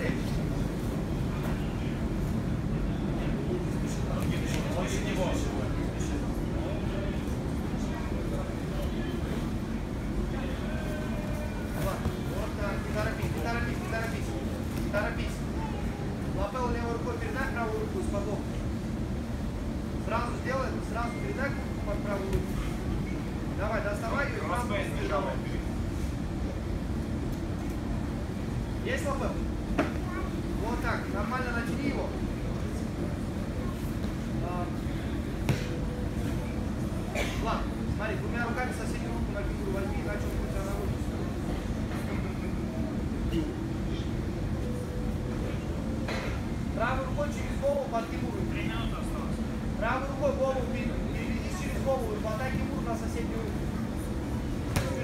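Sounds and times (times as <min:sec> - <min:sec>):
low room rumble: 0:00.0 - 0:55.0
murmur of voices: 0:00.0 - 0:55.0.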